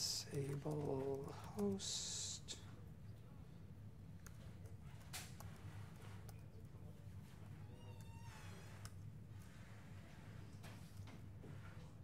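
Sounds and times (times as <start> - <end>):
room hum: 0.0 - 12.0
faint squeak: 7.3 - 8.9.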